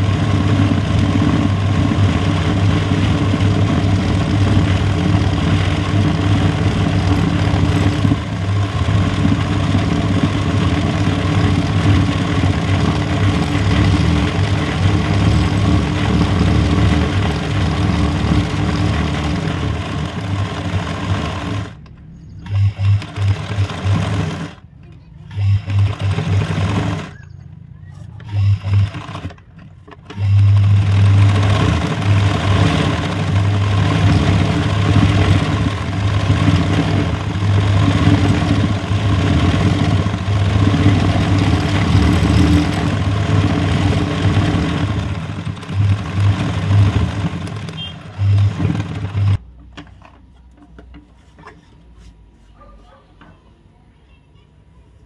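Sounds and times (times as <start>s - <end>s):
sewing machine stitching: 0.0s - 27.3s, 28.2s - 49.5s.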